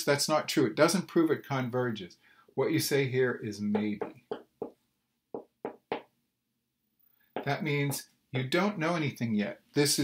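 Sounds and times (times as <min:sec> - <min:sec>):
marker writing on whiteboard: 0:03.7 - 0:04.8, 0:05.4 - 0:06.1, 0:07.4 - 0:08.6.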